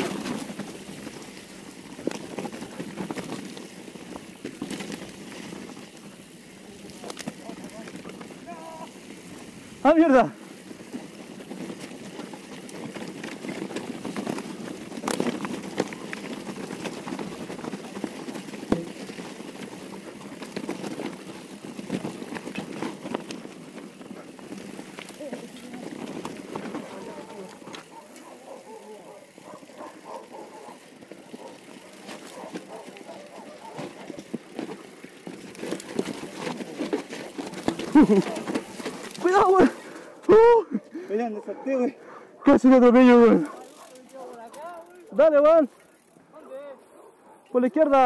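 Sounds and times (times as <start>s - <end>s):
tyres rolling over dirt and rock: 0.0s - 40.1s
bike rattling: 0.0s - 48.0s.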